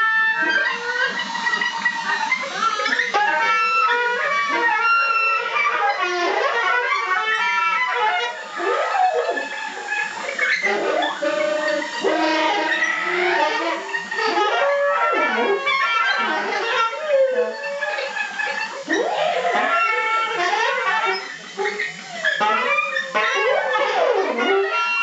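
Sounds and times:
wavering vessel flute tones: 0.0 - 25.0.

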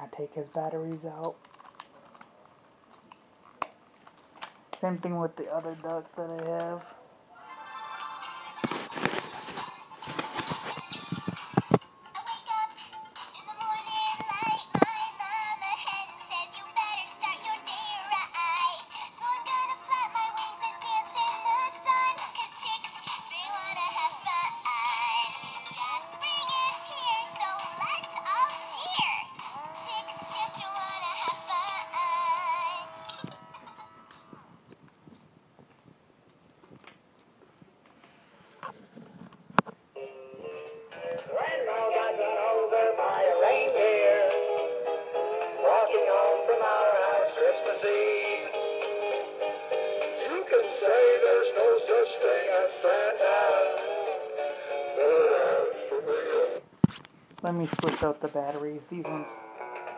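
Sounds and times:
toy tinny electronic song: 23.2 - 33.9.

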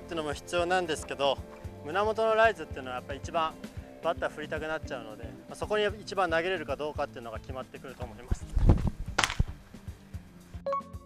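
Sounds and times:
background music with steady beat: 0.0 - 11.0
ball smacking into leather mitt: 8.8 - 9.6.

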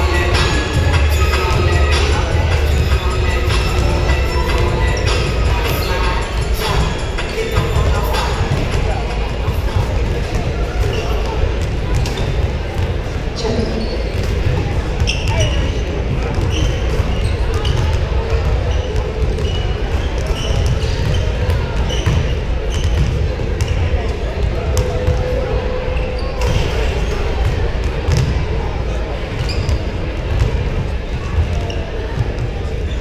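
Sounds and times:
sneaker squeaks: 0.0 - 28.4, 29.2 - 33.0
crowd chatter: 0.0 - 33.0
basketballs bouncing on wooden floor: 14.1 - 23.8, 28.1 - 28.4.

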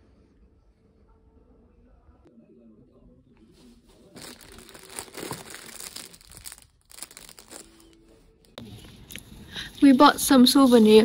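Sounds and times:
plastic wrapping crinkling: 4.0 - 8.6.

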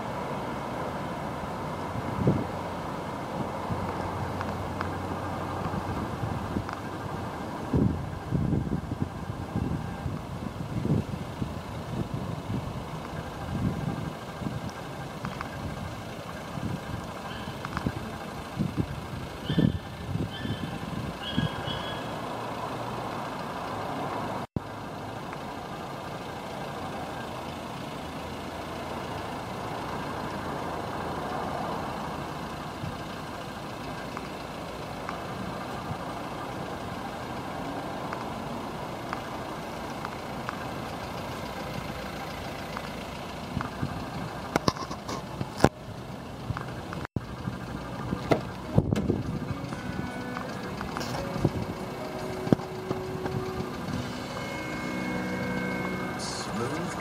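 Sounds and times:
motor vehicle noise: 0.0 - 57.0
car door opening clicks: 48.1 - 49.4.

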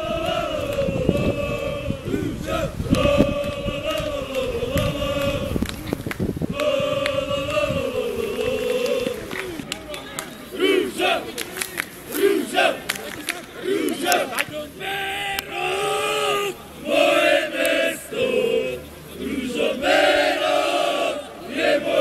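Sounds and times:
crowd chanting: 0.0 - 22.0
crowd shouting: 6.6 - 11.4, 12.1 - 22.0.

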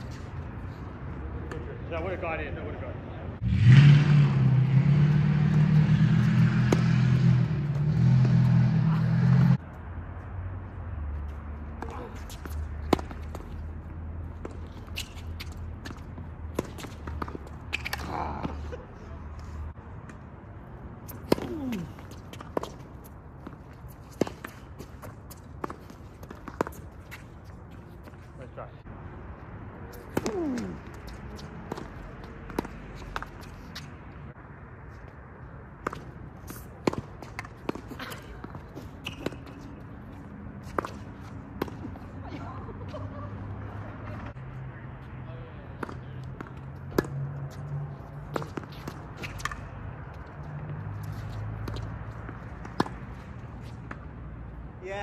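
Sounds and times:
tennis balls struck and bouncing: 5.3 - 10.3, 11.5 - 18.9, 19.8 - 28.3, 29.9 - 34.2, 35.5 - 43.4, 45.6 - 54.4.

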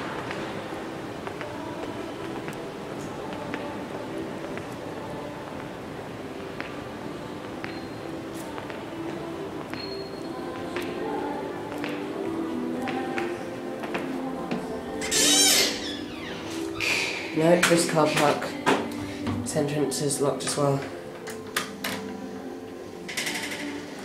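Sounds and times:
background music with short notes: 0.0 - 24.0
footsteps on hard floor: 12.8 - 14.7.

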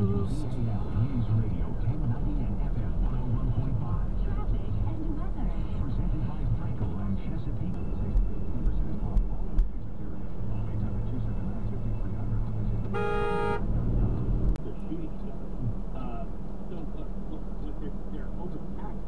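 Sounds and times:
car driving rumble inside cabin: 0.0 - 19.0
car horn: 12.9 - 13.8.

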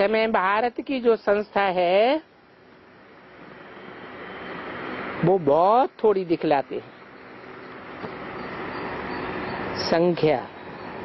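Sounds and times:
vehicle approaching: 2.7 - 11.0.

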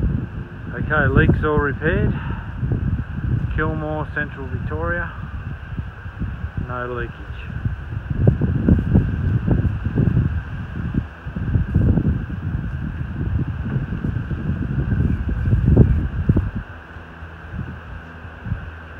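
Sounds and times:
wind buffeting microphone: 0.0 - 18.9.

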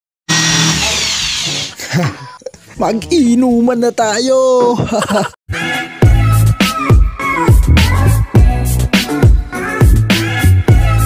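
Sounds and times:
electric drill boring into wood: 0.3 - 1.8.

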